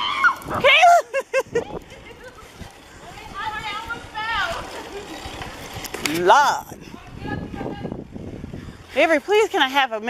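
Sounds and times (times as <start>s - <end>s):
woman wailing: 0.0s - 1.6s
woman laughing: 0.6s - 2.5s.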